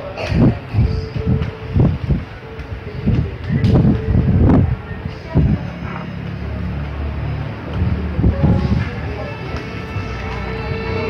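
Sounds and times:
irregular low thuds: 0.4 - 5.7, 7.6 - 9.0
background music with held note: 7.9 - 11.0.

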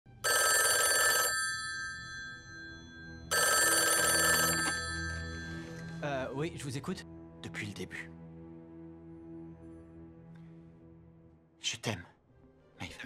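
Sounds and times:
desk telephone bell ringing: 0.2 - 6.0.

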